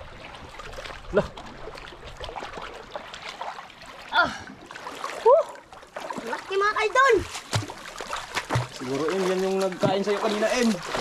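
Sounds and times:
feet splashing through water: 0.0 - 11.0.

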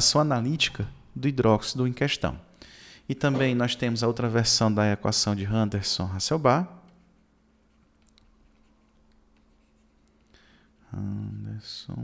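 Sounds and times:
faint steady hum: 0.0 - 12.0
stylus writing on a tablet: 7.6 - 10.1.

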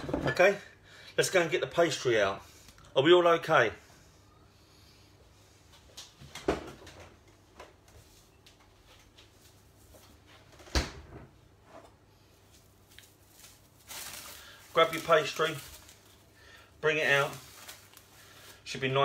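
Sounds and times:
kitchen knocks and clunks: 0.0 - 0.5, 6.2 - 7.7.

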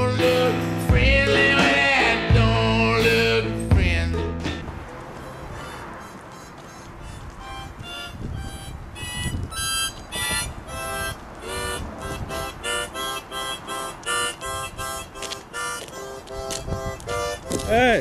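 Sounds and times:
harmonica playing: 0.0 - 18.0.

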